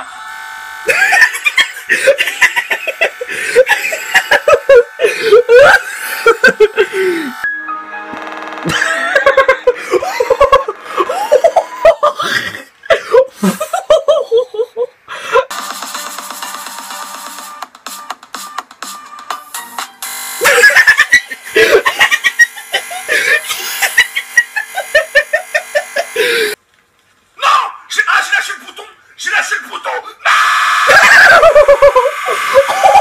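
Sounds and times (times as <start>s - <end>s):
laughter: 0.9s - 7.3s, 8.7s - 15.4s, 20.4s - 26.4s, 30.9s - 33.0s
music: 7.4s - 9.6s, 15.5s - 20.4s.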